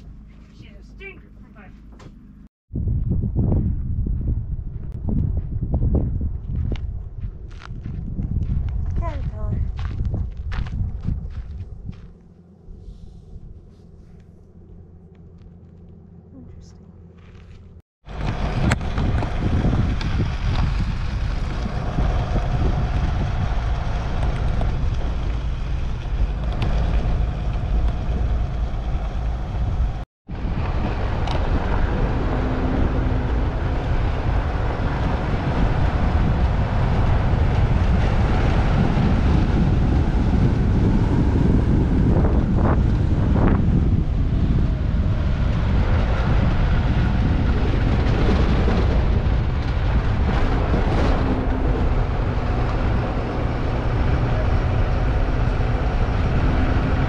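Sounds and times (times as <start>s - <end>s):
road and tyre noise: 0.0s - 57.0s
wind buffeting microphone: 2.7s - 15.0s, 18.0s - 57.0s.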